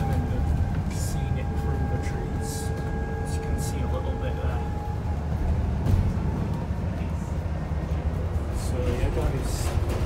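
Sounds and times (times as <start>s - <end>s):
bus engine and road rumble: 0.0s - 10.0s.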